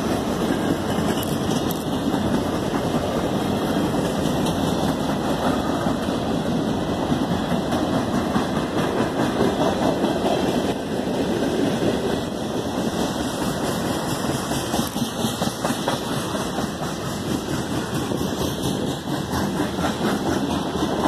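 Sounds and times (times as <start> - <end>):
train wheels rumbling on rails: 0.0 - 21.0.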